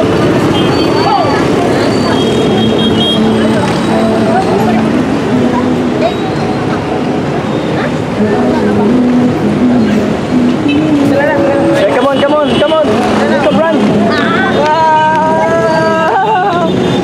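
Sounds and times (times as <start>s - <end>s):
street traffic: 0.0s - 17.0s
person singing a melody: 3.4s - 6.1s, 8.1s - 12.0s, 13.8s - 16.8s.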